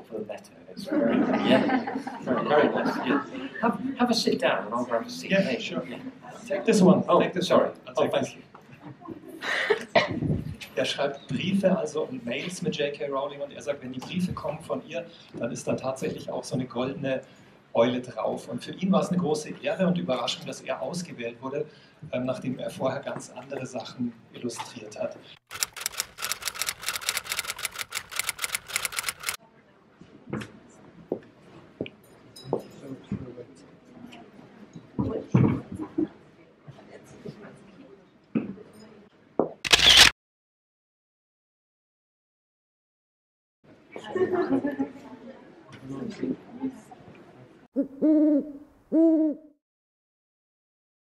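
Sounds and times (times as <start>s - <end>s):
faint murmur of people: 0.0s - 25.3s, 29.4s - 39.4s, 43.7s - 48.4s
rapid mechanical clicks: 25.5s - 29.4s, 39.7s - 40.1s
owl-like hoots: 47.8s - 49.6s.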